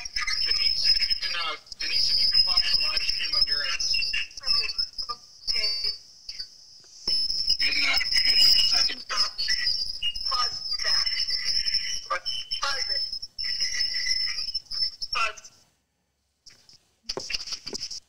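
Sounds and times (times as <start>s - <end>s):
garbled voices over call line: 0.0s - 6.4s, 7.6s - 14.5s, 15.1s - 15.5s
steady high-pitched whine: 0.0s - 15.6s.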